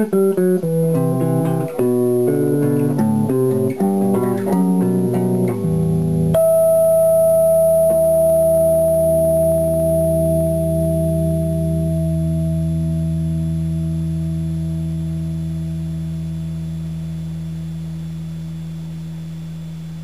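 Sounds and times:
electric guitar chord ringing: 0.0s - 18.2s.

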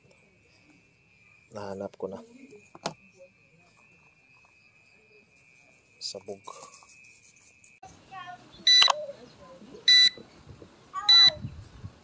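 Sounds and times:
thin high-pitched whine: 0.0s - 10.2s.

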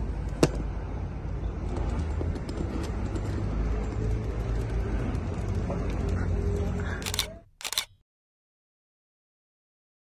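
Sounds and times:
outdoor background noise: 0.0s - 8.0s
camera shutter clicks: 7.0s - 8.0s.

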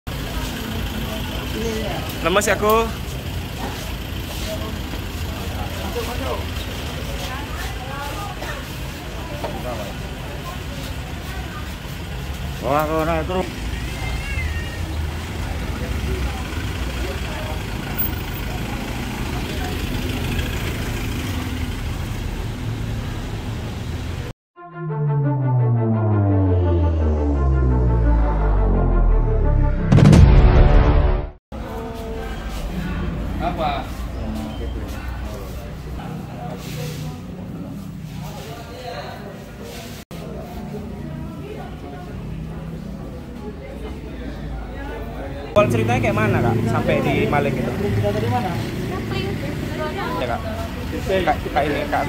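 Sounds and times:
steady low rumble: 25.1s - 29.8s.

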